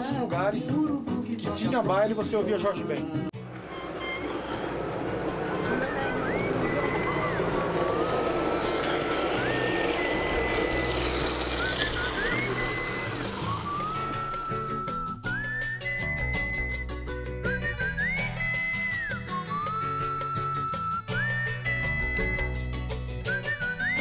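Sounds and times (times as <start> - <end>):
person whistling a tune: 3.7 - 24.0.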